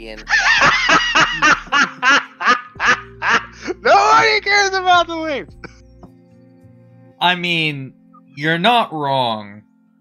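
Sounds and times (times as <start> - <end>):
person laughing: 0.3 - 4.3.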